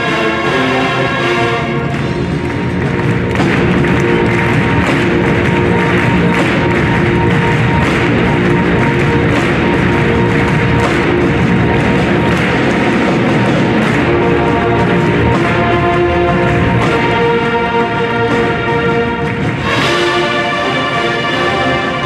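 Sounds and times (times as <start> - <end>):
marching band playing: 0.0 - 22.0
steady drum beat: 0.0 - 22.0.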